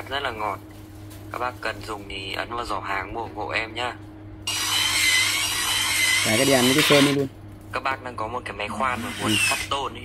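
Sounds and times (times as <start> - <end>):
drill cutting sheet metal: 4.5 - 7.3, 8.7 - 9.9.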